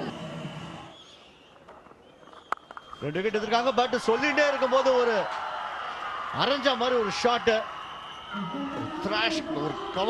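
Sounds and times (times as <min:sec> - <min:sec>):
man's voice: 0:08.8 - 0:10.0.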